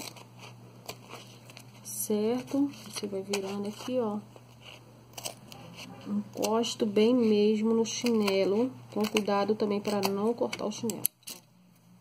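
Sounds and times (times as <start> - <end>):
scissors snipping: 7.9 - 11.4.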